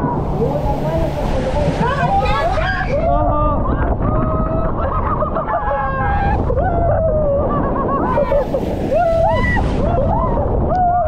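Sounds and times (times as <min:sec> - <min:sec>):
rushing water: 0:00.0 - 0:11.0
wind noise: 0:00.0 - 0:11.0
riders screaming and whooping: 0:01.7 - 0:11.0.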